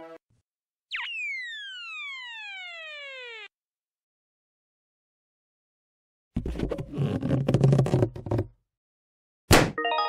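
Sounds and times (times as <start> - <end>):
cartoon whistle sound effect: 0.9 - 3.5.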